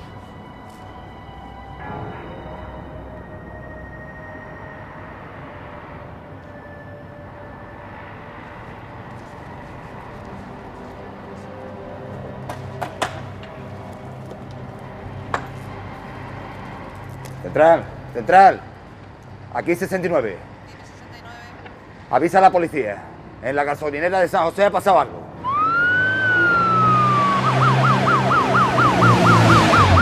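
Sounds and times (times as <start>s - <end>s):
tense film score: 0.0s - 30.0s.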